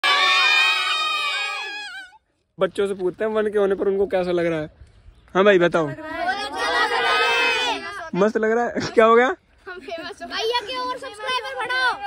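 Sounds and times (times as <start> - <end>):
children shouting and cheering: 0.0 - 2.2, 6.0 - 8.1, 10.2 - 12.0.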